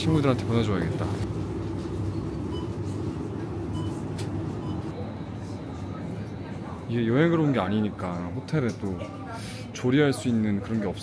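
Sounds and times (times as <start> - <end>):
refrigerated shelves humming: 0.0 - 11.0.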